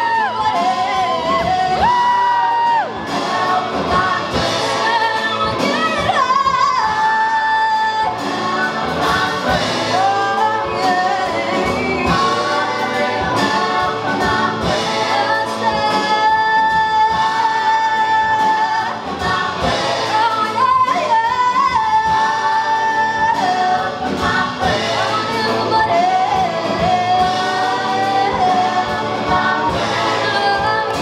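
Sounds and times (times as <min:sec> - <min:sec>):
group of singers: 0:00.0 - 0:31.0
lead voice singing: 0:00.0 - 0:31.0
live rock band: 0:00.0 - 0:31.0.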